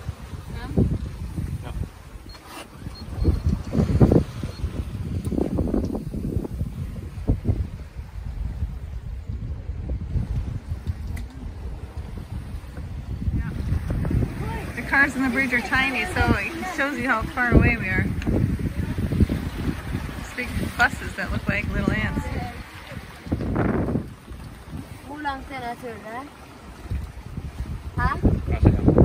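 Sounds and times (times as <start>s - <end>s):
sea rushing: 0.0s - 29.0s
wind buffeting microphone: 0.0s - 29.0s.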